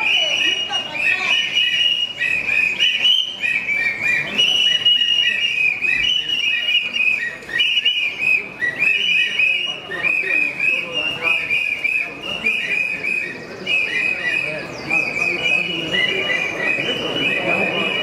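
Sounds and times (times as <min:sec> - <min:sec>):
crowd blowing whistles: 0:00.0 - 0:18.0.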